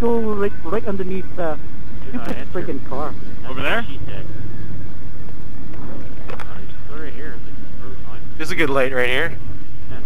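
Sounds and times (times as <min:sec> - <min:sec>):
motorcycle engine low rumble: 0:00.0 - 0:10.0.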